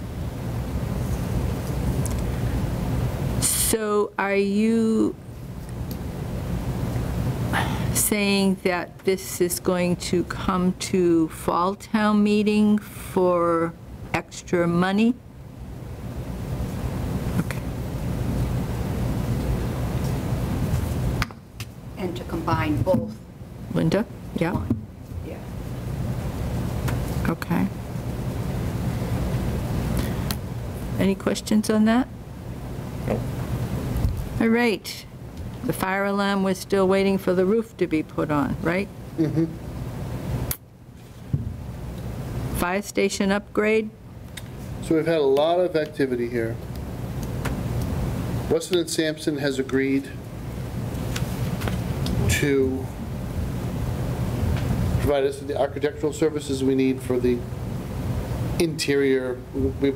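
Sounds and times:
low room rumble: 0.0 - 59.9.

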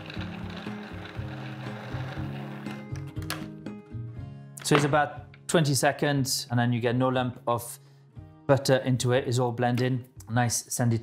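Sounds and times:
food processor motor whirring: 0.0 - 2.8.

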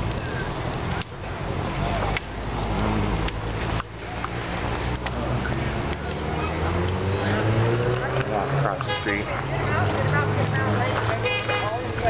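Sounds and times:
dense rushing noise: 0.0 - 12.0
vehicle engines idling: 0.0 - 12.0.

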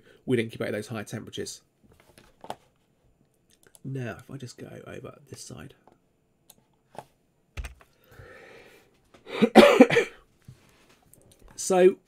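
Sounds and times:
man coughing: 9.3 - 10.2.

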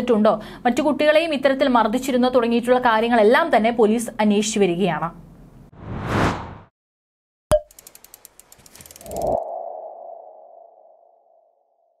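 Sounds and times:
clicking ticks: 7.7 - 9.4.

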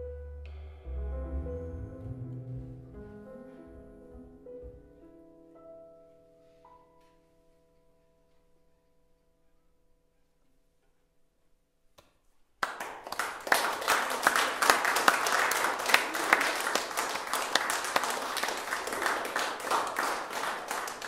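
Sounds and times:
audience applause: 12.6 - 21.0.

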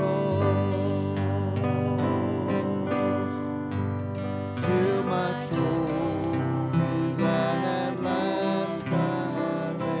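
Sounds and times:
acoustic guitar strumming: 0.0 - 10.0
voices singing: 4.6 - 10.0.

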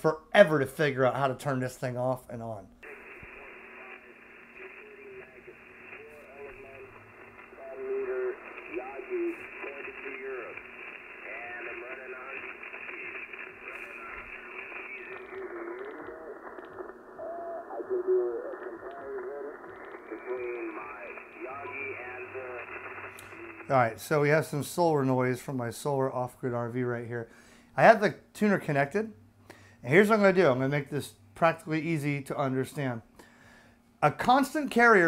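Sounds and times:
radio hiss: 0.8 - 28.0
thin radio speech: 2.8 - 23.8.

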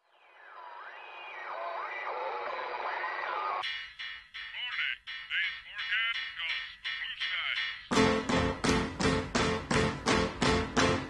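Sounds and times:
gliding whistling tones: 0.0 - 7.9
tinny radio audio: 0.0 - 8.0.

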